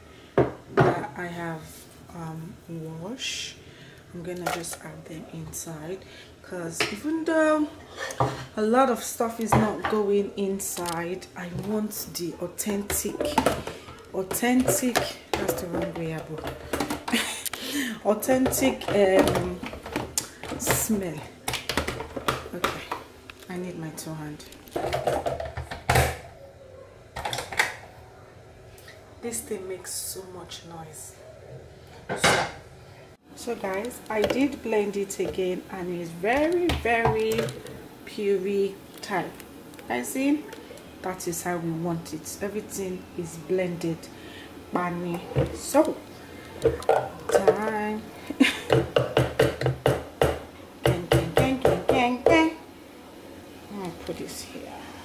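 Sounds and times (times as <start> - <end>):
spatula knocking on blender jug: 48.7 - 52.5.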